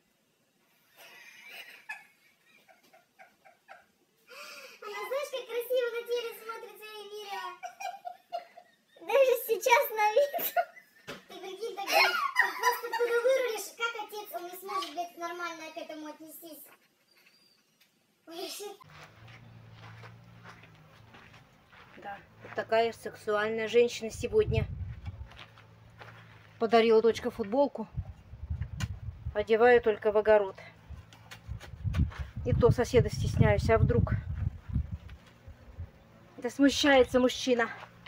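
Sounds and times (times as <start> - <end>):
faint giggling: 0.9 - 4.5
faint footsteps on soil: 18.8 - 27.6, 30.7 - 32.6, 37.6 - 38.0.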